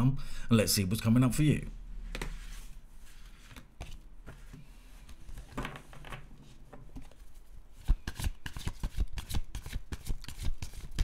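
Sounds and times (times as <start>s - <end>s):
cards being shuffled: 7.0s - 11.0s.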